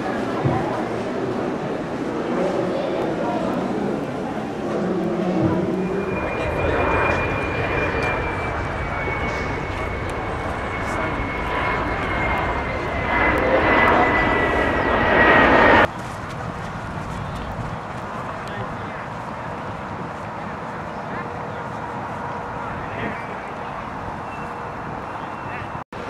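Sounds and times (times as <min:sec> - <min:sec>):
aircraft engine rumble: 0:00.0 - 0:26.0
high whine sinking in pitch: 0:02.2 - 0:15.9.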